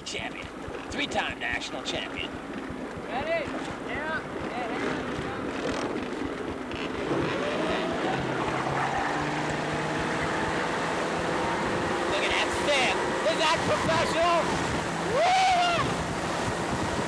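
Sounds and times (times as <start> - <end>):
motorboat engine: 0.0 - 17.0
wind on microphone: 12.9 - 17.0.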